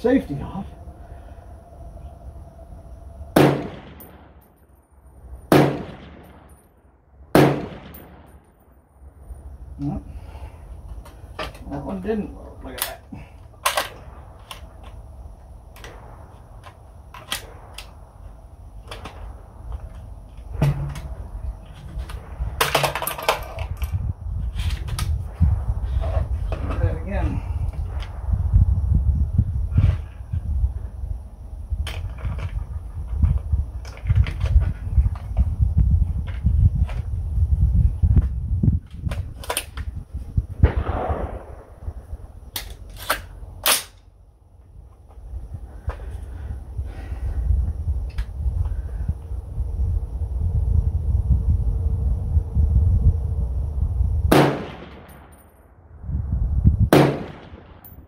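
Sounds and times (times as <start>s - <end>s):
heavy low rumble: 0.0s - 43.7s, 44.7s - 58.0s
rifle gunshots: 3.4s - 4.2s, 5.5s - 6.5s, 7.3s - 8.3s, 40.6s - 41.8s, 54.3s - 55.3s, 56.9s - 57.8s.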